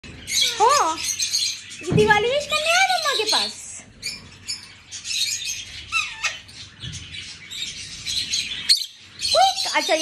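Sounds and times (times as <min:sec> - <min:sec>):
parrots chirping and chattering: 0:00.0 - 0:10.0.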